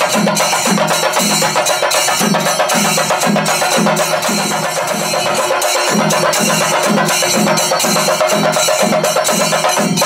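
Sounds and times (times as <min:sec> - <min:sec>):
drums beaten with sticks in rolls: 0:00.0 - 0:10.0
steady low drum beat: 0:00.0 - 0:10.0.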